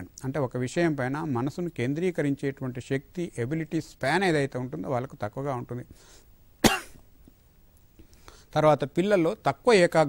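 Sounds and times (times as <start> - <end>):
man coughing: 6.6 - 7.0.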